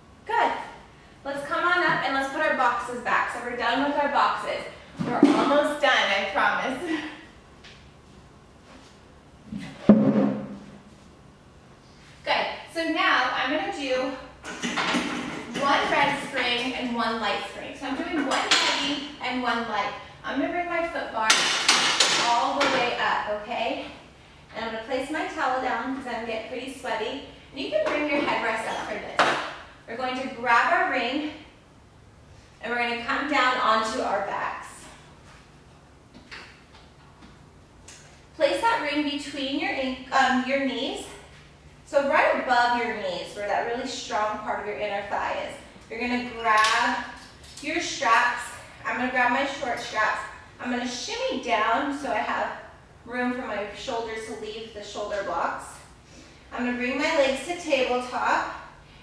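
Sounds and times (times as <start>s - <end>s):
woman talking: 0.2s - 7.3s, 12.2s - 14.3s, 15.5s - 31.5s, 32.6s - 35.0s, 38.4s - 41.2s, 41.9s - 55.9s, 56.5s - 58.7s
woman talking and laughing: 6.5s - 7.3s.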